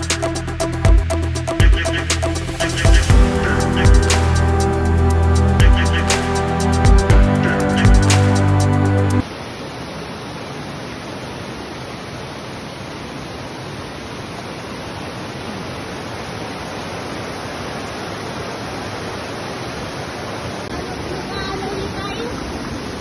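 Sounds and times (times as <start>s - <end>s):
river water rushing over boulders: 9.2s - 23.0s.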